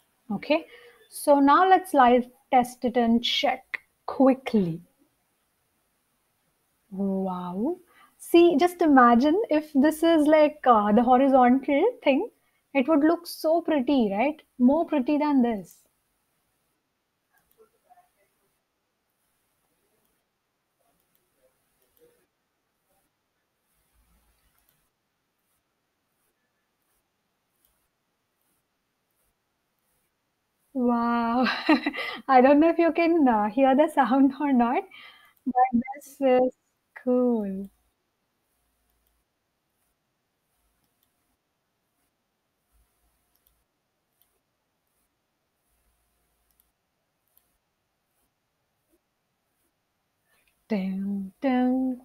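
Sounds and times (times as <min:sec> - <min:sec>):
faint mouse clicks: 0:17.3 - 0:17.7, 0:23.8 - 0:24.9, 0:38.8 - 0:39.2, 0:40.8 - 0:41.2, 0:42.8 - 0:44.4, 0:46.4 - 0:47.6
faint ticks: 0:42.8 - 0:44.4, 0:45.7 - 0:47.6.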